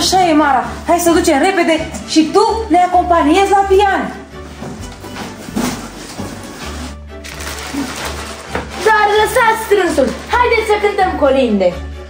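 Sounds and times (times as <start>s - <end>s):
cardboard and plastic bags rustling: 4.4s - 10.9s.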